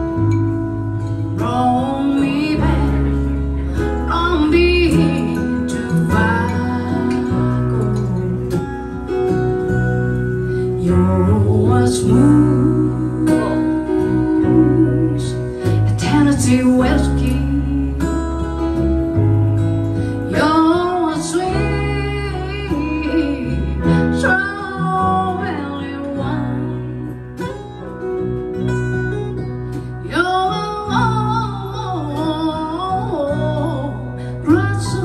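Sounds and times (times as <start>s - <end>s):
bass line: 0.0s - 35.0s
piano: 0.0s - 35.0s
strummed acoustic guitars: 0.0s - 35.0s
woman singing: 0.1s - 9.0s, 10.5s - 18.8s, 20.2s - 27.6s, 29.8s - 35.0s.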